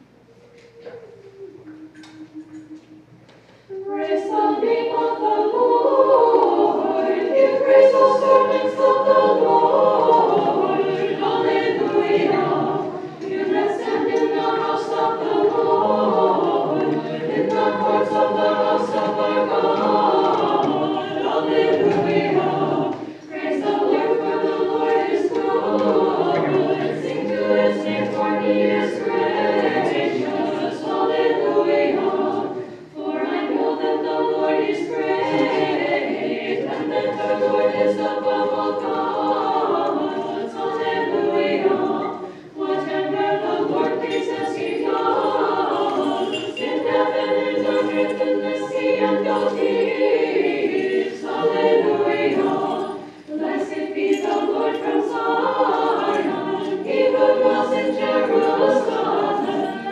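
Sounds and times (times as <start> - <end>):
choir chanting unaccompanied: 3.7 - 59.9.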